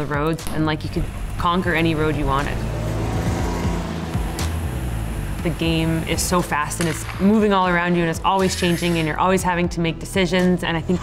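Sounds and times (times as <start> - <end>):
motorcycle engine running: 0.0 - 7.7
background music: 0.0 - 11.0.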